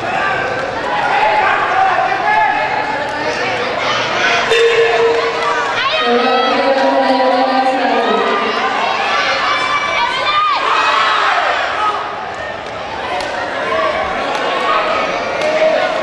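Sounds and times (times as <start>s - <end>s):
spectators cheering and shouting: 0.0s - 16.0s
high yells: 4.5s - 6.9s.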